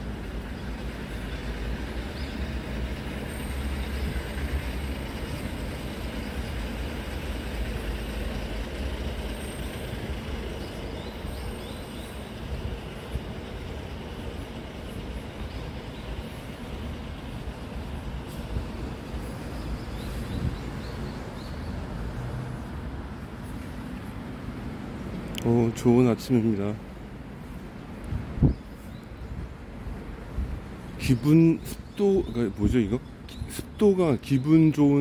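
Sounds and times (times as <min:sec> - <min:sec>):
traffic rumble on overpass: 0:00.0 - 0:35.0.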